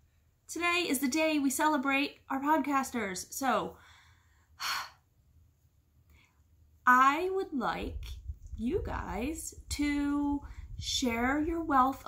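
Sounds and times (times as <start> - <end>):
woman breathing: 3.7 - 5.1.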